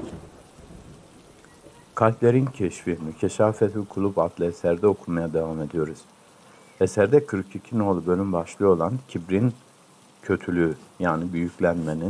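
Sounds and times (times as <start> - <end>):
faint steady rain: 0.0 - 12.0.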